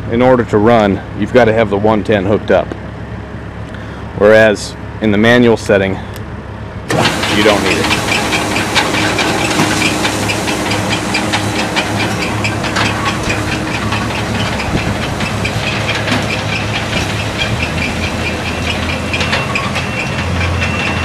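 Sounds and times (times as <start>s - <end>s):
conveyor motor hiss and hum: 0.0s - 21.0s.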